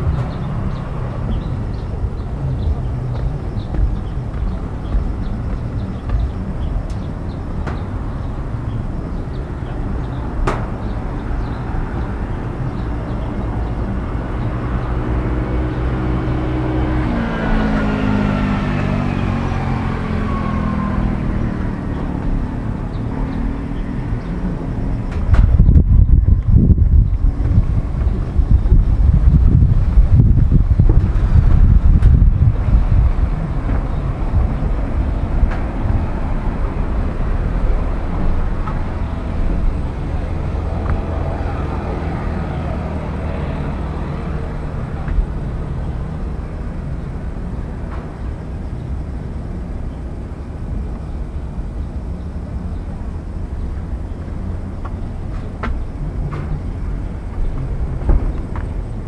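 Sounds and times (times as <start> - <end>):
loud uneven low rumble: 0.0 - 59.0
motor vehicle passing: 0.0 - 59.0
steady low hum: 0.0 - 59.0.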